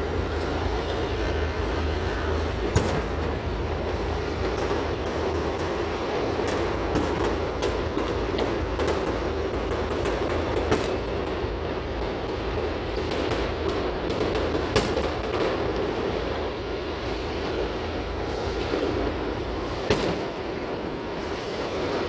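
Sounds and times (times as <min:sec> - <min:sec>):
fireworks exploding: 0:00.0 - 0:22.0
sharp fireworks bangs: 0:00.0 - 0:22.0.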